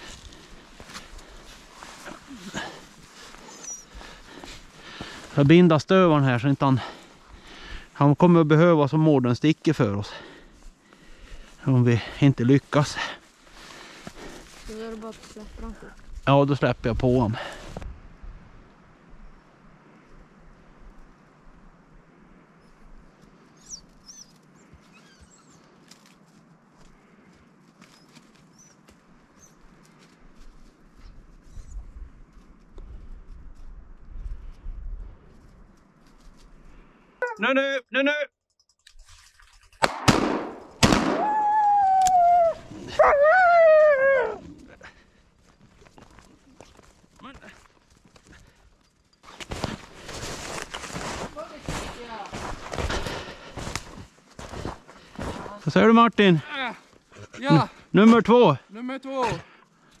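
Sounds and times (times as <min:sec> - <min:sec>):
footsteps crunching in snow: 0:00.0 - 0:05.6, 0:12.6 - 0:16.2, 0:49.2 - 0:55.8
gunshots: 0:39.8 - 0:41.4.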